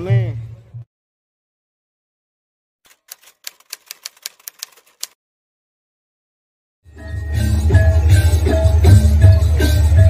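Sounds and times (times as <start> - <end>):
typewriter key clicks: 2.9 - 5.2.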